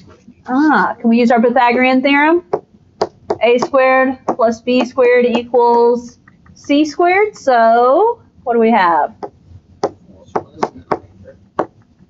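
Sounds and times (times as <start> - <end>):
stylus tapping on tablet screen: 2.5 - 6.6, 9.2 - 11.9.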